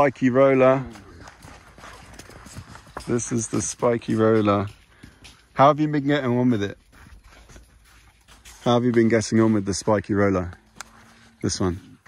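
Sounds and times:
footsteps on damp sand: 0:00.0 - 0:12.0.

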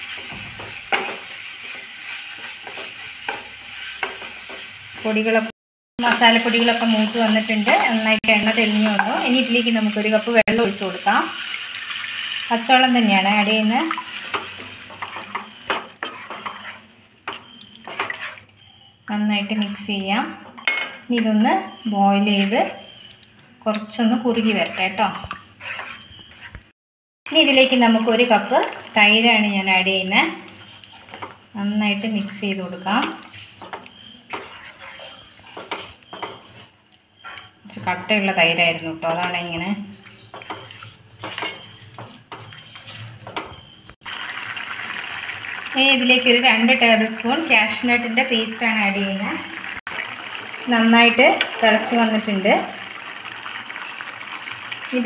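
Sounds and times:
spatula scraping pan: 0:00.0 - 0:05.2, 0:14.1 - 0:18.6, 0:24.4 - 0:26.6, 0:30.4 - 0:37.6, 0:39.1 - 0:43.7.

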